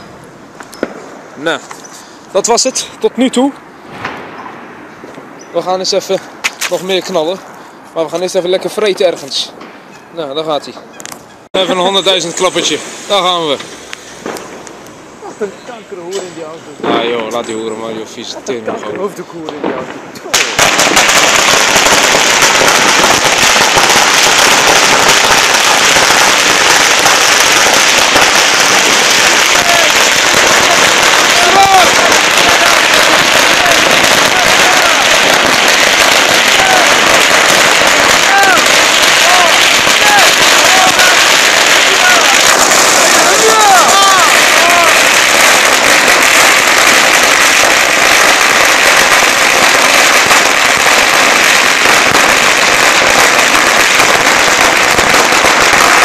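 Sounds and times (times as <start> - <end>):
firecracker string banging rapidly: 19.5 - 56.0.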